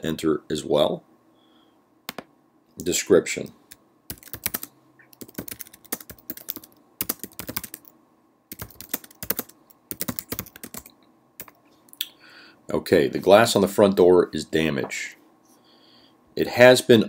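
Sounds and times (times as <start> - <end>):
typing on a computer keyboard: 4.1 - 7.9, 8.5 - 11.6.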